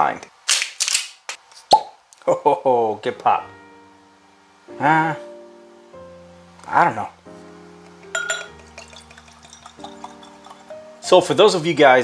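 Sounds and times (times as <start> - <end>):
soft background music: 2.4 - 12.0
whiskey pouring into glass: 7.9 - 11.4
glass clink: 8.0 - 10.8.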